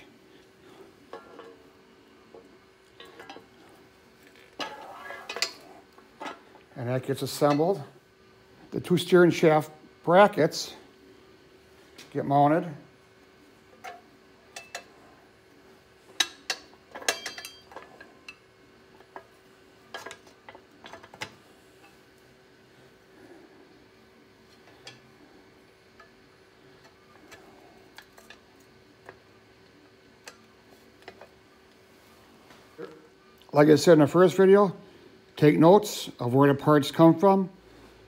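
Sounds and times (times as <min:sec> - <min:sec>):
faint steady hum: 0:00.0 - 0:38.0
metal brackets clicking and clinking: 0:16.2 - 0:18.4.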